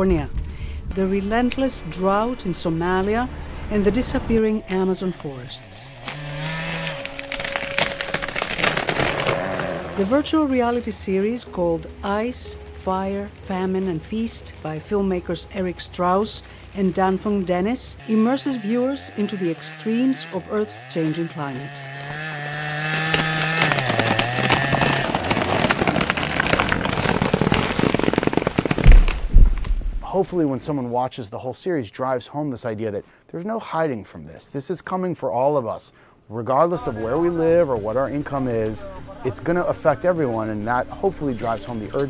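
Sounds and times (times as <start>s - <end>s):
chainsaw running: 5.5s - 10.9s, 18.0s - 29.2s
tree falling through branches: 5.9s - 11.4s, 21.9s - 30.1s
crackling and snapping: 6.0s - 11.1s, 22.1s - 30.1s
heavy thud of tree hitting ground: 23.5s - 30.0s.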